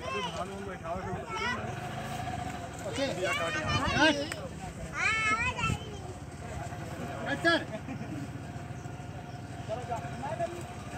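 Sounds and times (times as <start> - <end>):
people talking and calling: 0.0 - 10.9.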